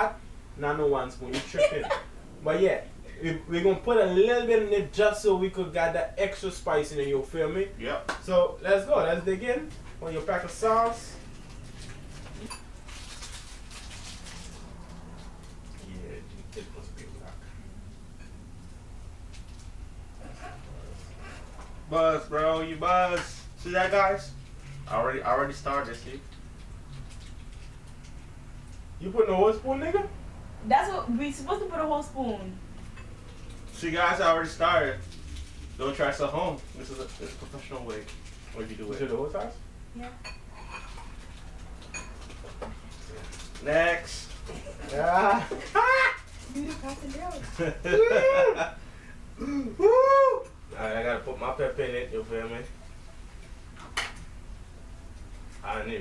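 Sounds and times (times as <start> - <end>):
low room hum: 0.0 - 56.0
plastic sachets crinkling: 9.4 - 17.2, 33.4 - 39.5, 41.2 - 48.0.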